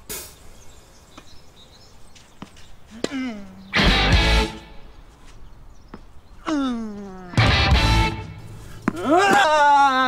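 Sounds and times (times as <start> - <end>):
bird chirps: 0.0 - 7.4.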